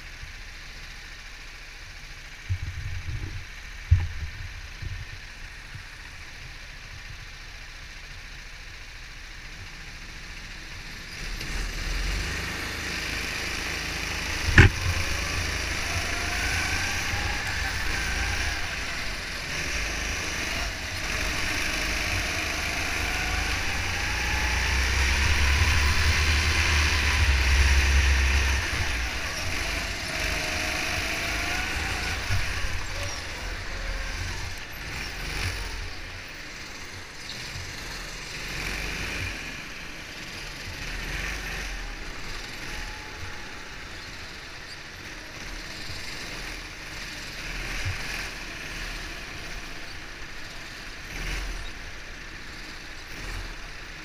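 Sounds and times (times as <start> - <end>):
go-kart engine revving: 0.0 - 54.0.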